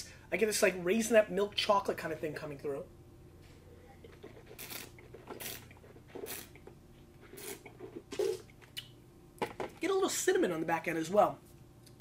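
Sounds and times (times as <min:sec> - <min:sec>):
person slurping wine: 0:07.2 - 0:08.5.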